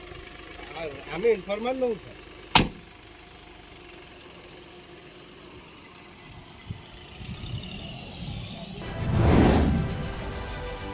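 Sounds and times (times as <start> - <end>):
car engine idling: 0.0 - 9.0.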